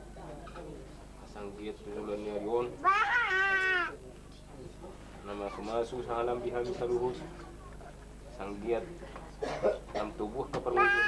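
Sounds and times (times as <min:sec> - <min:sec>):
background talk: 0:00.0 - 0:11.0
small child crying: 0:02.8 - 0:04.0, 0:10.8 - 0:11.0.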